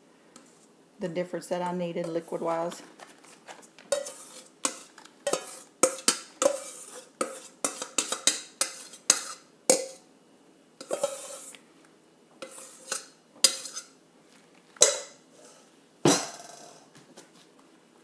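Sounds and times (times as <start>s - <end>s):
metal spoon scraping mesh strainer: 3.9s - 10.0s, 10.8s - 11.6s, 12.4s - 14.0s.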